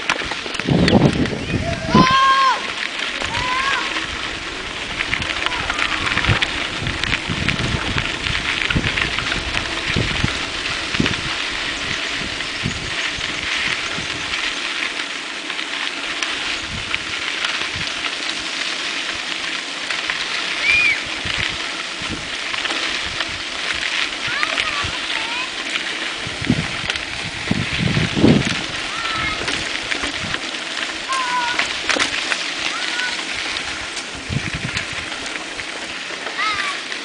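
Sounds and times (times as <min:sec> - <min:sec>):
bike tyres rolling over dirt road: 0:00.0 - 0:37.0
wind on microphone: 0:00.5 - 0:02.6, 0:03.2 - 0:14.5, 0:16.4 - 0:18.1, 0:20.6 - 0:25.2, 0:26.0 - 0:31.8, 0:33.3 - 0:35.5.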